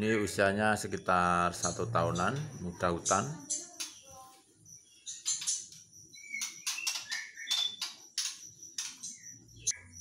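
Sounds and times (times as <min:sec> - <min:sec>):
bird chirping: 0:00.0 - 0:10.0
bird whistled notes: 0:06.1 - 0:08.4.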